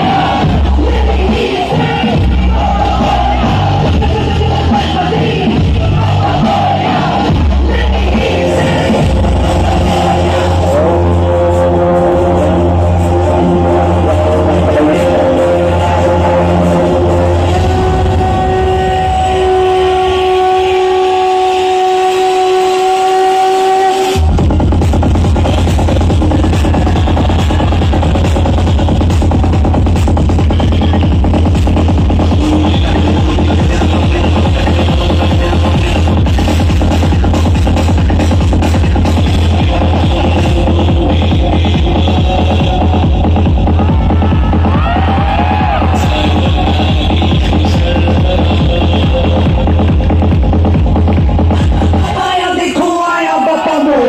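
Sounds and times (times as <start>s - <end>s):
fast electronic beat with heavy bass: 0.0s - 54.0s
loud dance music: 0.0s - 54.0s.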